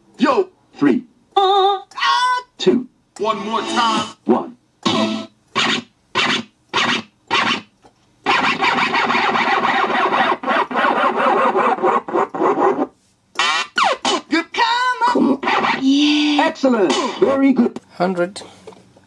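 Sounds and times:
keyboard dance music: 4.8 - 7.6, 8.3 - 11.5
keyboard short stabs: 4.8 - 7.6.

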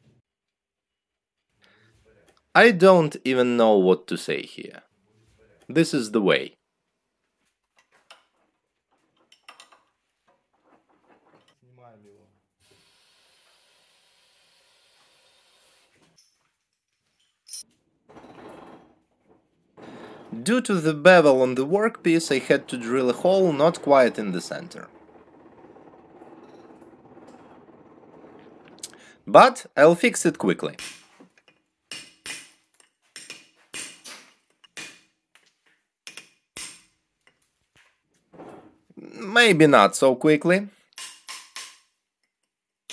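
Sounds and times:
lathe chuck clicks and knocks: 22.2 - 29.0.

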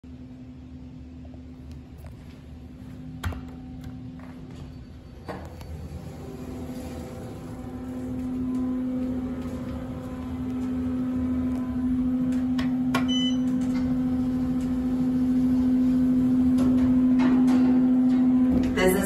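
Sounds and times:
elevator electrical hum: 0.0 - 19.0.

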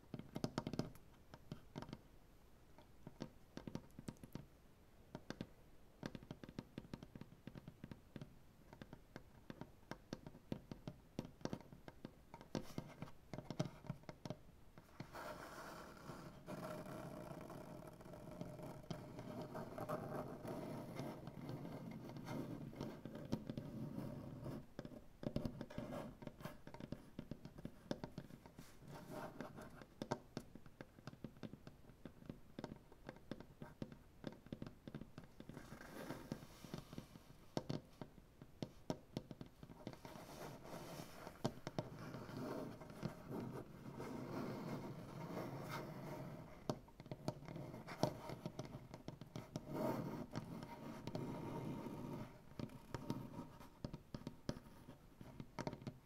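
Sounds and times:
fingers tapping on wood: 0.1 - 2.0, 3.0 - 4.5, 5.1 - 15.2, 16.1 - 56.0
nails scratching on wood: 32.6 - 55.0.

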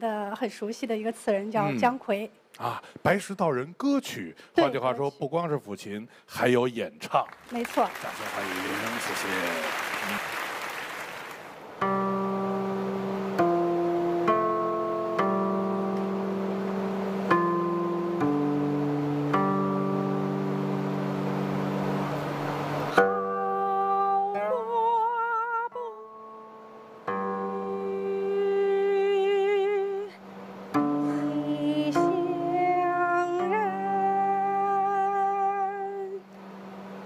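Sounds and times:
applause: 7.0 - 11.6
plucked zither notes: 22.9 - 25.6
woman singing with vibrato: 23.0 - 26.3, 27.6 - 30.2, 30.9 - 36.3.

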